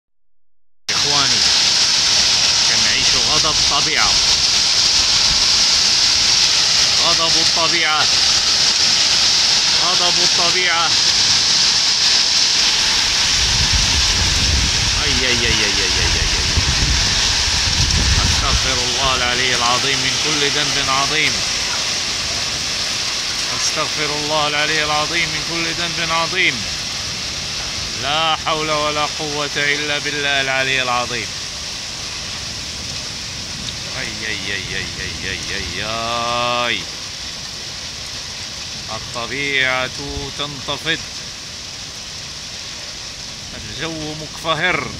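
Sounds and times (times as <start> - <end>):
heavy rain pouring: 0.9 - 44.9
low rumble: 12.6 - 20.2.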